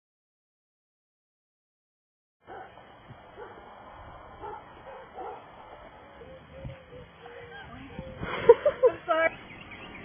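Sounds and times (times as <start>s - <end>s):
outdoor background noise: 2.4s - 10.0s.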